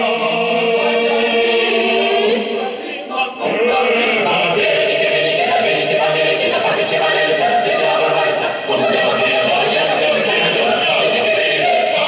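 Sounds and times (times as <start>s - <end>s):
choir singing a cappella: 0.0s - 12.0s.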